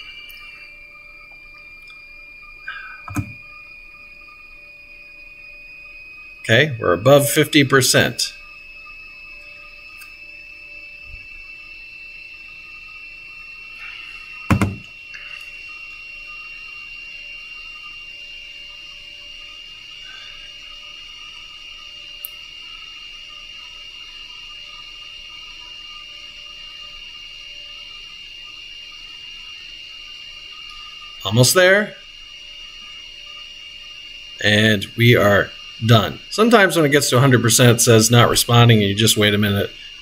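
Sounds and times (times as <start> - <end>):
background hum with high whine: 0.0 - 40.0.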